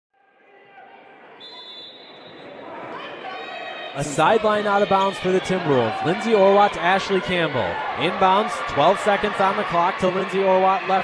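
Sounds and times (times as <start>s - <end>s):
indistinct voices in hall: 0.2s - 11.0s.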